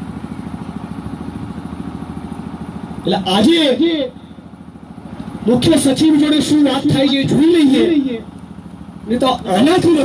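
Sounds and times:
small engine running: 0:00.0 - 0:10.0
man speaking through microphone: 0:03.0 - 0:04.2, 0:05.4 - 0:08.3, 0:09.0 - 0:10.0.

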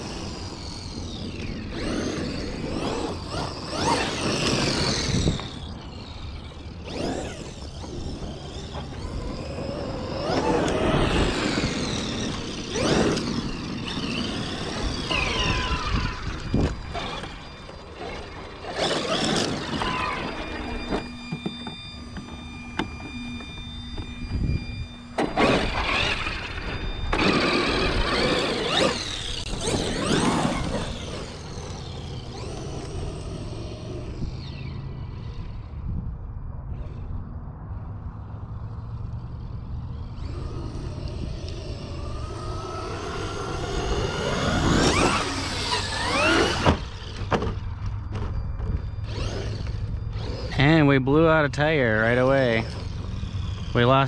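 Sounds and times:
electric toy truck motor whine: 0:00.0 - 0:54.0.

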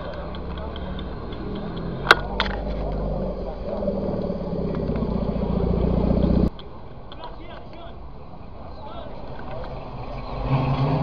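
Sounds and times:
car engine running: 0:00.0 - 0:06.5.

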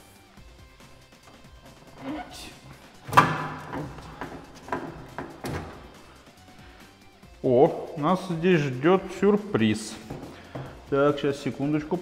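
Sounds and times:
metal panel clunking: 0:01.2 - 0:06.1.

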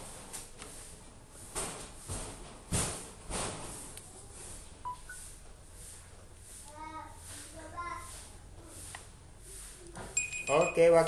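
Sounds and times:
short electronic beeps: 0:04.8 - 0:05.2, 0:10.2 - 0:11.0.

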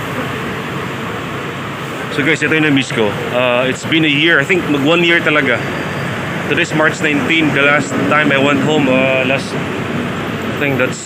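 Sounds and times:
buses idling: 0:00.0 - 0:11.0
faint voices: 0:02.0 - 0:09.7.

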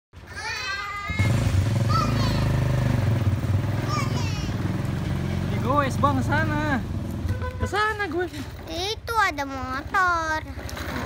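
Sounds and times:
children's high-pitched calls: 0:00.2 - 0:02.8, 0:03.6 - 0:04.7
motorcycle engine running: 0:01.1 - 0:08.6.

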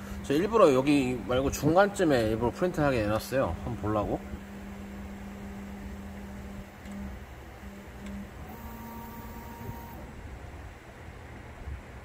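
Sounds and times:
steady background hum: 0:00.0 - 0:12.0
stepper motors whining: 0:02.1 - 0:10.3
higher tone: 0:08.5 - 0:10.1.

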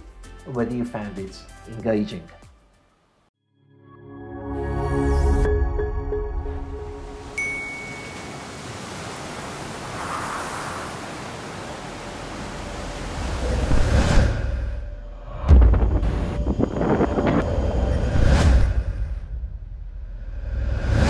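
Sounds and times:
sea and wind rushing: 0:06.4 - 0:19.2
high ping: 0:07.4 - 0:08.3
deep low boom: 0:13.6 - 0:20.4.

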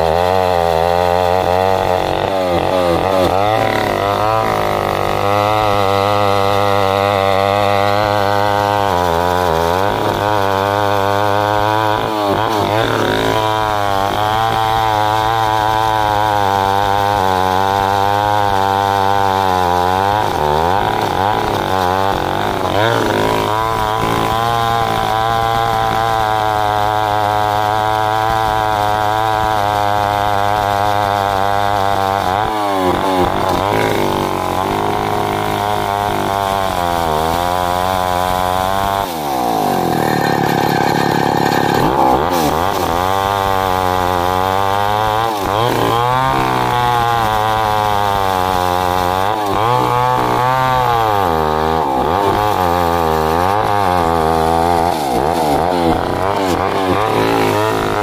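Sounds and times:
chainsaw cutting log: 0:00.0 - 0:58.0.

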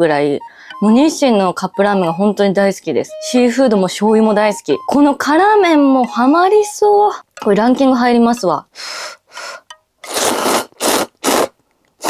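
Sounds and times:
person slurping noodles: 0:10.0 - 0:11.6.

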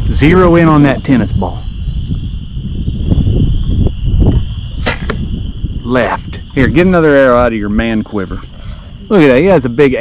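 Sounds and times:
arrow release click: 0:04.8 - 0:05.2
bow string snap: 0:04.8 - 0:05.3.

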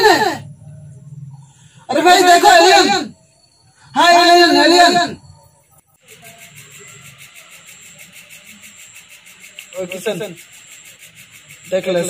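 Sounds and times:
person shouting: 0:00.0 - 0:00.4
faint low background sounds: 0:00.0 - 0:12.0
high pulsing chirp: 0:00.0 - 0:12.0.

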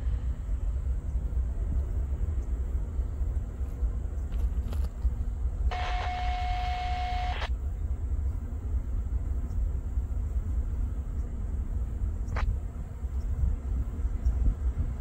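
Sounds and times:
diesel freight train rumbling: 0:00.0 - 0:06.1.

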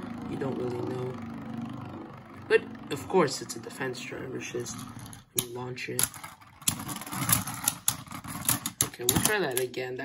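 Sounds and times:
spinning tops rattling: 0:04.5 - 0:09.7
plastic tops clacking together: 0:05.4 - 0:09.8.

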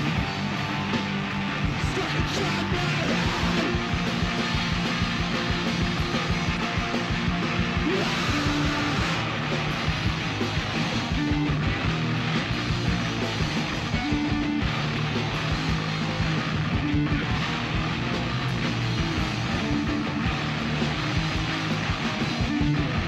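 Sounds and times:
bass guitar: 0:00.0 - 0:23.0
drums: 0:00.0 - 0:23.0
electric guitar riff: 0:00.0 - 0:23.0.

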